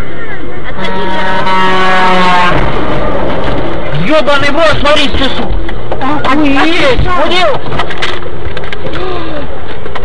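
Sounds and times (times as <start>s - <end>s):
loud vehicle noise: 0.0s - 10.0s.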